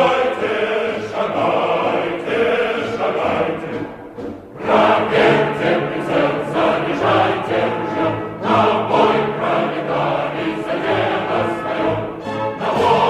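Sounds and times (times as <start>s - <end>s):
choir singing: 0.0s - 13.0s.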